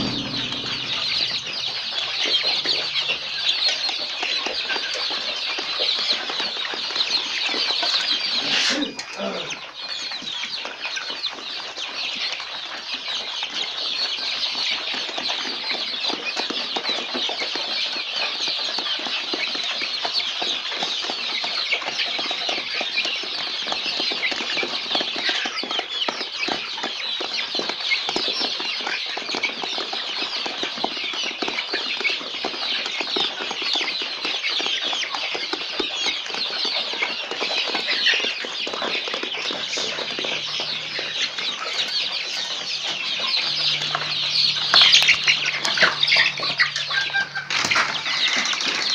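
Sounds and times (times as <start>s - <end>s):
young chickens cheeping: 35.7s - 48.9s.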